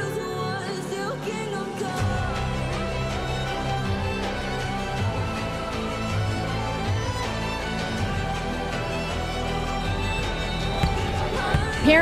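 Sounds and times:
music with sustained instrumental tones: 0.0 - 11.6.

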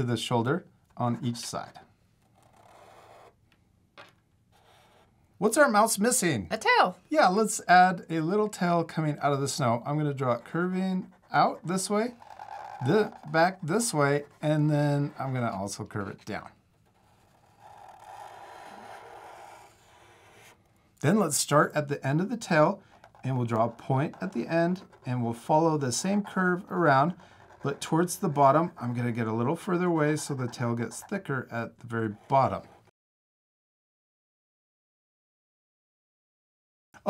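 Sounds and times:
marker scratching on paper: 2.2 - 3.4, 4.5 - 5.1, 9.4 - 32.9.

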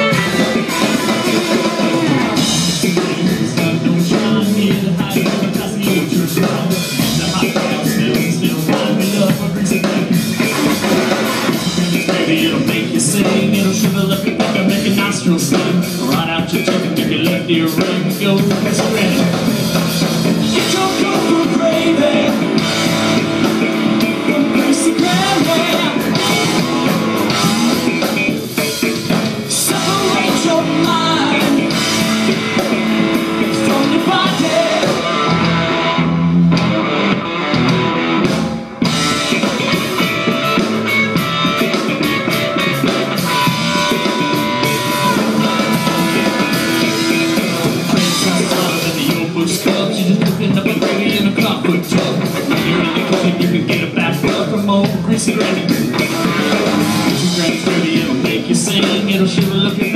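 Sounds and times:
drum kit playing: 0.0 - 59.9
electric bass: 0.0 - 59.9.

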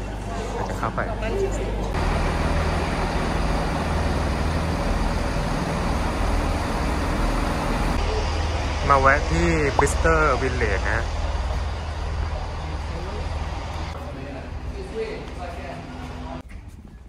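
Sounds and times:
diesel train engine idling: 1.7 - 16.4.

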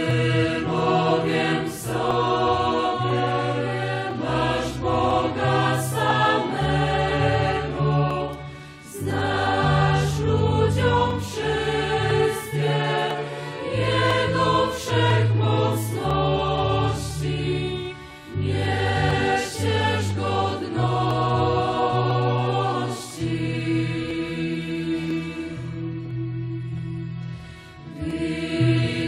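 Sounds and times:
choir of women singing a hymn: 0.0 - 26.5, 27.8 - 29.0.

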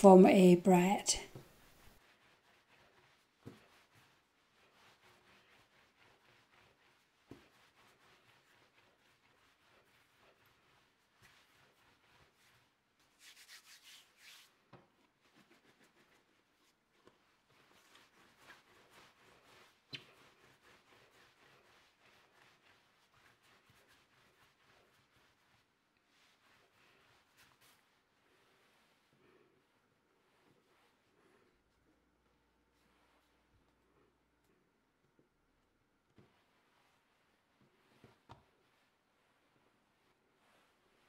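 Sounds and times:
hands rolling dough on marble: 1.2 - 41.0.

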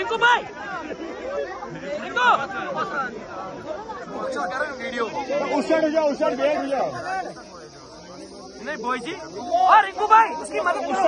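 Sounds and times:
crowd of people talking: 0.0 - 11.0.

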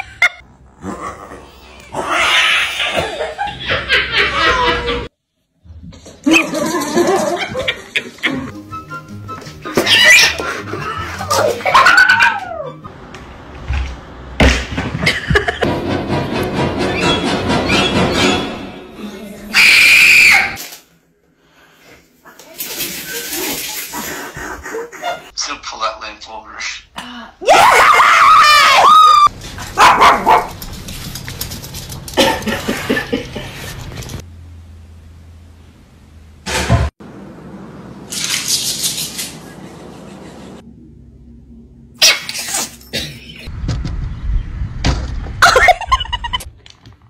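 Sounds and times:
animal wailing and yelping: 1.8 - 3.2, 9.7 - 12.9.

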